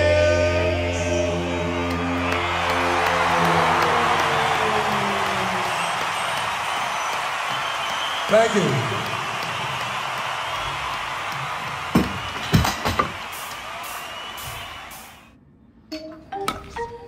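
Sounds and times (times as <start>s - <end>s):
stadium crowd cheering and applauding: 0.0s - 15.4s.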